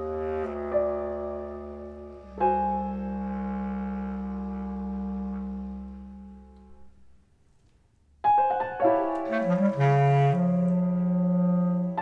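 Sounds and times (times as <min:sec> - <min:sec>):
bass clarinet low note: 0:00.0 - 0:07.0, 0:09.2 - 0:12.0
piano chord: 0:08.2 - 0:12.0.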